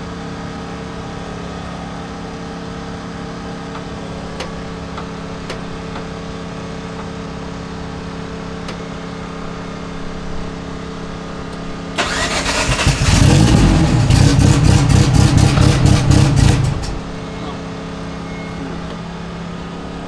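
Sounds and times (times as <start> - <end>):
car engine running rough with crackle: 0.0 - 20.0.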